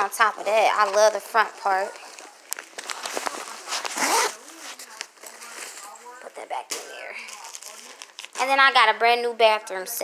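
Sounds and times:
zipper being pulled: 3.6s - 4.8s.

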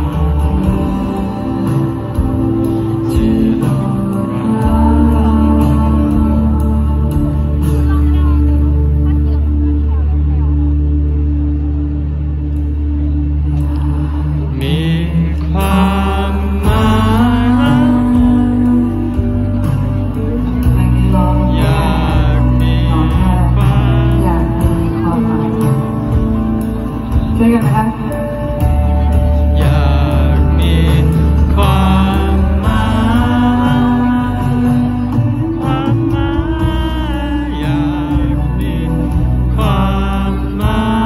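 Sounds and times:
person singing: 0.0s - 9.4s, 13.6s - 41.0s
live band playing: 0.0s - 41.0s.

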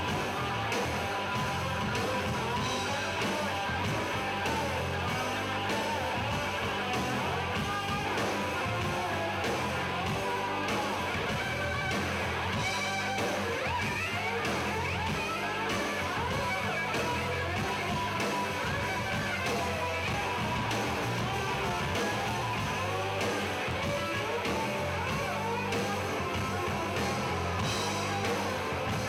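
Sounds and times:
bass guitar: 0.0s - 29.0s
drums: 0.0s - 29.0s
electric guitar: 0.0s - 29.0s.

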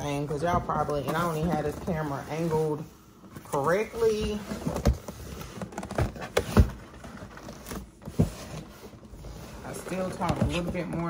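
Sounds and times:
cardboard scraping and rustling: 0.3s - 11.0s.

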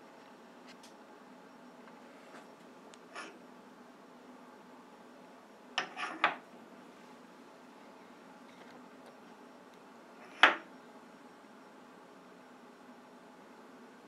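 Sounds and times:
faint steady hum: 0.0s - 14.0s.

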